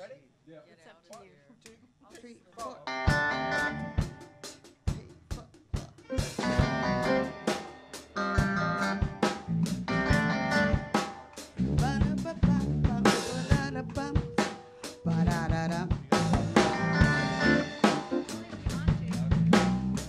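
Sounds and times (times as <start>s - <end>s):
drum kit beat: 1.7s - 20.0s
live band playing: 2.7s - 5.0s, 5.8s - 20.0s.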